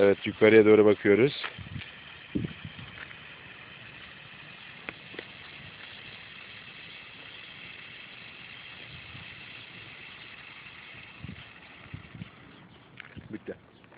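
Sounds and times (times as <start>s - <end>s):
outdoor background hiss: 0.0s - 13.9s.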